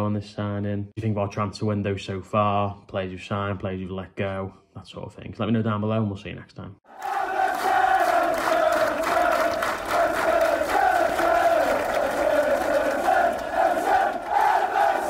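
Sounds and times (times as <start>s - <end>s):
crowd chanting in unison: 6.9s - 15.0s.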